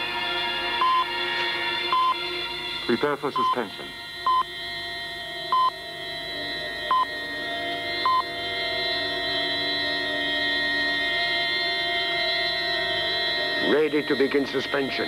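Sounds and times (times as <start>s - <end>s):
electronic drone: 0.0s - 15.0s.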